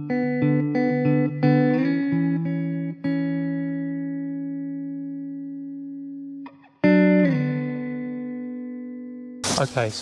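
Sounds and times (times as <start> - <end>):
guitar chords ringing: 0.0 - 9.9.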